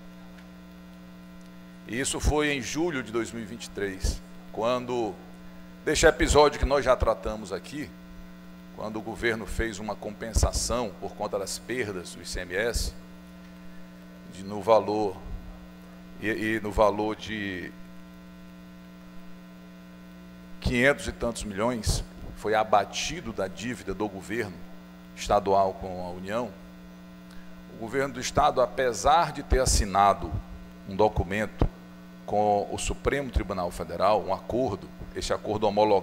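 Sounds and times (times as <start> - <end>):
electrical mains hum: 0.0 - 36.0
man talking: 1.9 - 8.0, 8.8 - 13.0, 14.3 - 15.3, 16.2 - 17.8, 20.6 - 26.6, 27.7 - 36.0.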